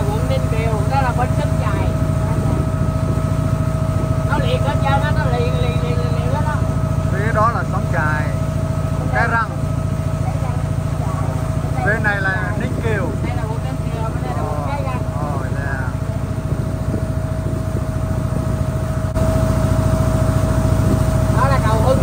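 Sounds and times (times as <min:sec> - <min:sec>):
people talking: 0:00.0 - 0:02.9, 0:04.2 - 0:08.4, 0:09.0 - 0:16.5, 0:21.3 - 0:22.0
boat engine droning: 0:00.0 - 0:22.0.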